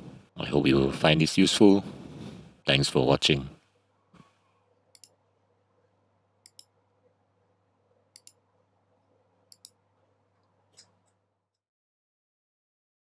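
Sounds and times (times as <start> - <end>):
computer mouse button clicks: 6.4 - 6.7, 8.2 - 8.4.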